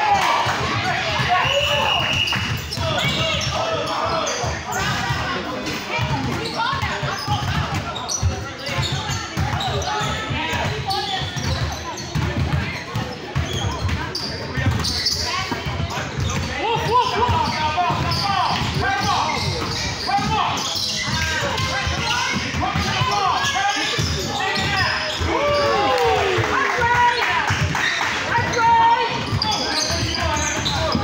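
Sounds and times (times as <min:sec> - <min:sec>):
voices calling out: 0:00.0 - 0:31.0
sneakers squeaking: 0:00.1 - 0:31.0
basketball bouncing on court floor: 0:06.0 - 0:25.8, 0:26.8 - 0:31.0.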